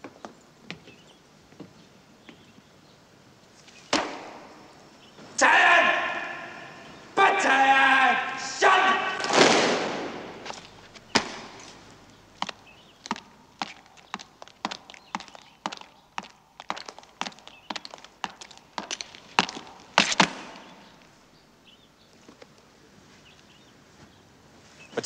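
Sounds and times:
marching boots on stone: 8.0 - 21.1
loud crash: 8.9 - 10.6.

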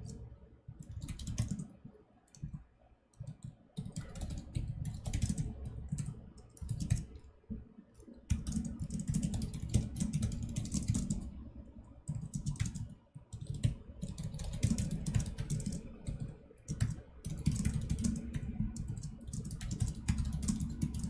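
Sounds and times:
typing on computer keyboard: 0.0 - 7.3, 8.0 - 21.0.

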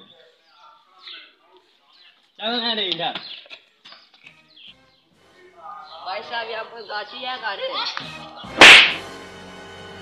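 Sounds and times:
faint background music: 0.0 - 10.0
loud slap: 8.6 - 9.1.

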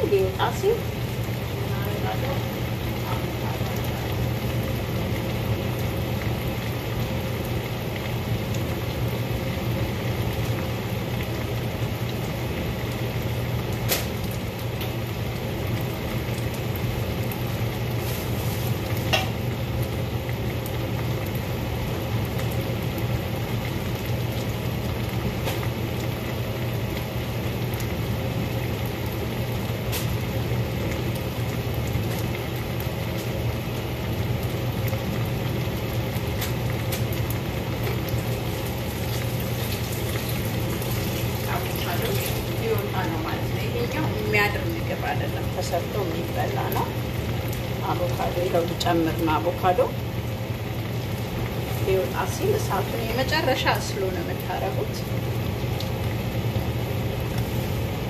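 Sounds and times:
vegetables sizzling in a pan: 0.0 - 58.0
sharp pops of frying: 3.6 - 42.6.

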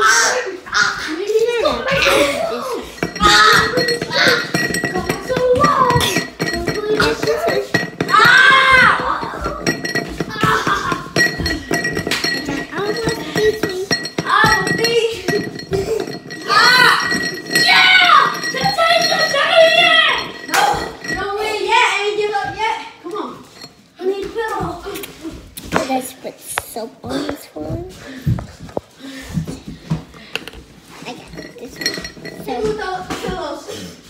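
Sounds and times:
children shouting and squealing: 0.0 - 11.4, 12.4 - 23.0.

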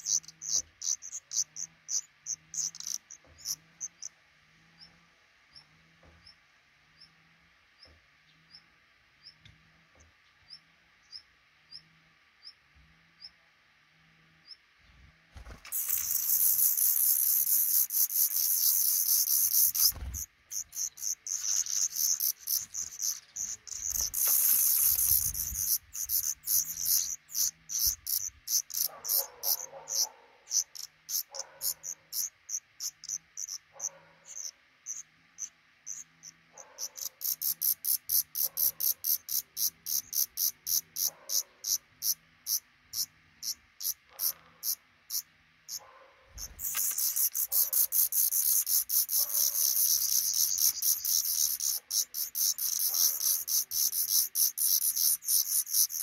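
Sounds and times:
nestlings begging chorus: 0.0 - 4.1, 15.4 - 45.8, 46.4 - 56.0.

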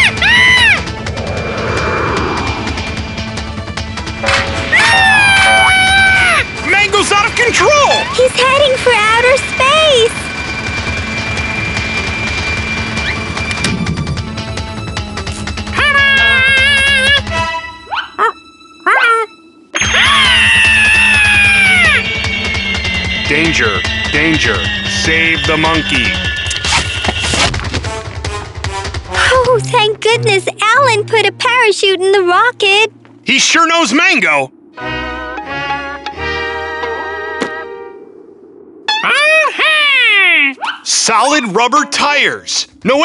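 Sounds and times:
cartoon rising squeals: 0.0 - 2.4, 4.6 - 6.4, 19.8 - 22.1, 38.8 - 40.8
cartoon music sustained chords: 0.0 - 26.8, 29.4 - 39.4
whoosh-like whine sinking in pitch: 0.8 - 5.6, 33.0 - 40.0.

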